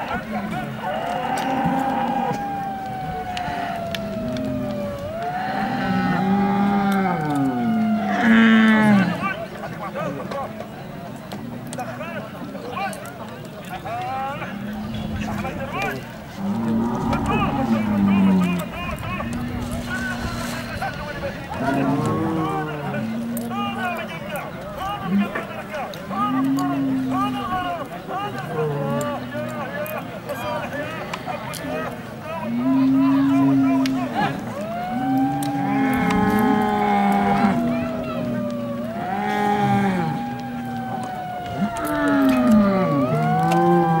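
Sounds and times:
men's voices: 0:00.0 - 0:44.0
bull bellowing: 0:00.8 - 0:09.3, 0:14.6 - 0:20.9, 0:21.5 - 0:24.0, 0:26.2 - 0:27.7, 0:32.5 - 0:44.0.

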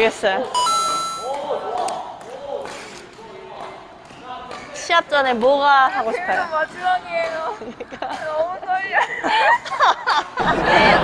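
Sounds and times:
electronic chime: 0:00.6 - 0:01.4.

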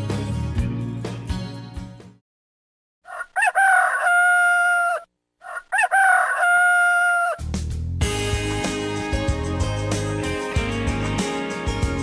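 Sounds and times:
rooster crowing: 0:03.0 - 0:07.4
guitar music: 0:08.0 - 0:12.0.

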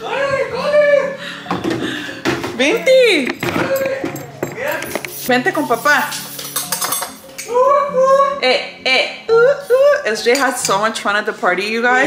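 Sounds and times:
metal spoon clinking dishes: 0:02.7 - 0:07.5, 0:10.2 - 0:10.9
woman's voice: 0:05.2 - 0:06.2, 0:10.0 - 0:12.0.

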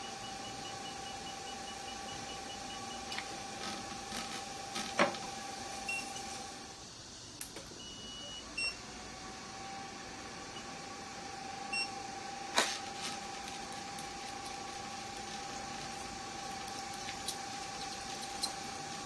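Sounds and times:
laser machine electronic hum: 0:00.0 - 0:19.0.

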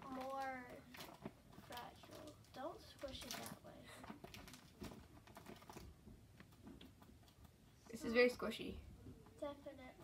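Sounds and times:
paper squishy crinkling and clicking: 0:00.0 - 0:07.6.

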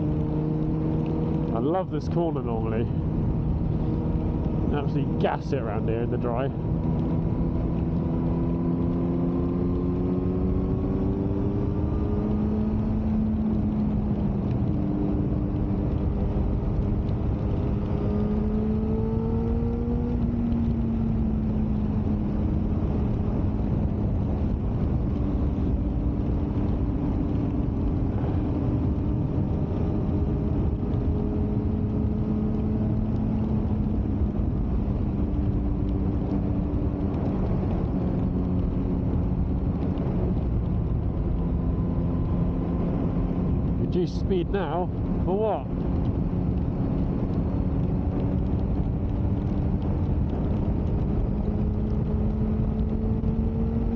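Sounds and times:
motorcycle engine cruising: 0:00.0 - 0:53.9
wind rumble on microphone: 0:00.0 - 0:53.9.

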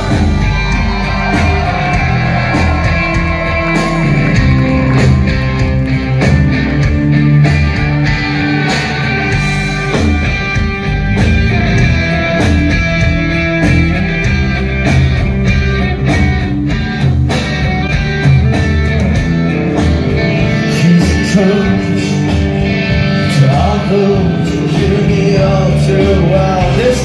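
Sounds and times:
drum beat: 0:00.0 - 0:21.6
bass guitar: 0:00.0 - 0:27.0
electric guitars: 0:00.0 - 0:27.0.

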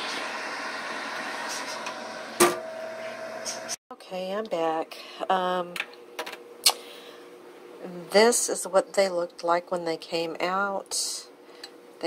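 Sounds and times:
countertop oven humming: 0:00.0 - 0:12.0.

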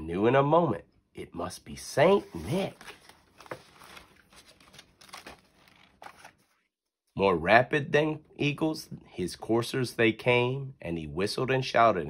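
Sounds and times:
stiff paper rustling and crinkling: 0:02.1 - 0:06.6.

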